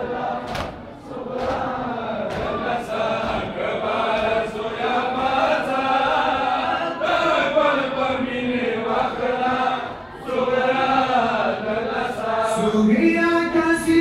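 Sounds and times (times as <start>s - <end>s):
men chanting in unison: 0.0s - 14.0s.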